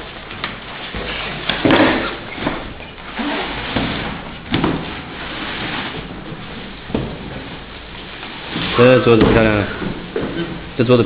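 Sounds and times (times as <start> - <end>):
plastic wrap rustling: 0.0 - 11.0.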